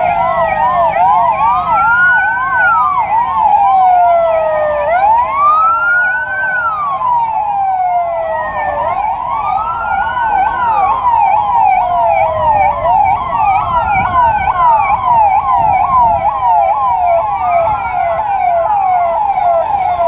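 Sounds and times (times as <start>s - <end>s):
engine and traffic rumble: 0.0s - 20.0s
police siren fast yelp: 0.0s - 20.0s
siren slow wail: 0.0s - 20.0s.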